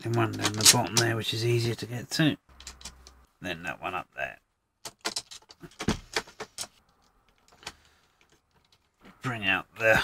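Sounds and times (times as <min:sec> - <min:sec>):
metal bolts clicking on acrylic: 0:02.6 - 0:03.2, 0:04.8 - 0:06.8.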